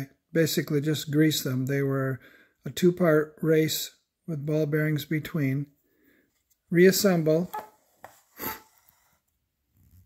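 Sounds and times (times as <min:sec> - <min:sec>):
sharp airy breath: 0:08.3 - 0:09.2.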